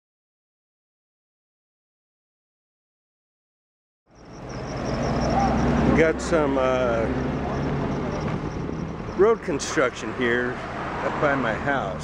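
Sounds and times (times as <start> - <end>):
low engine rumble: 4.1 - 12.0.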